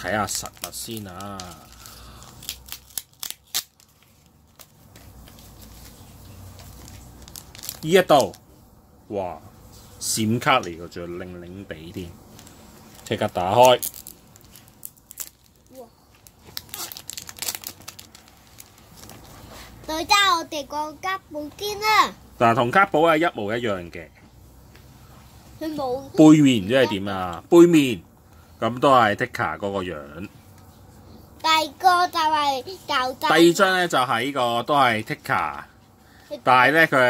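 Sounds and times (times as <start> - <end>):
plastic packaging crinkling: 0.0 - 8.4, 12.3 - 19.8.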